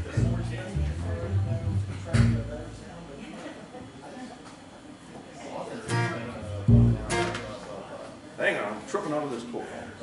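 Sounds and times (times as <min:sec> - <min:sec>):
plucked upright bass notes: 0:00.0 - 0:03.0, 0:05.9 - 0:07.5
acoustic guitar strums: 0:01.8 - 0:02.6, 0:05.9 - 0:07.5.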